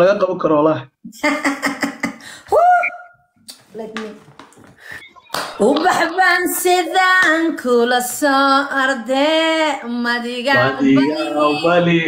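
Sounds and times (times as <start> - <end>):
woman singing: 5.6 - 11.9.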